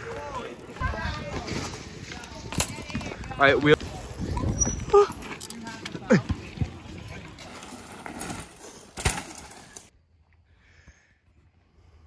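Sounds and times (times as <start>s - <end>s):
outdoor voices: 0.0s - 12.0s.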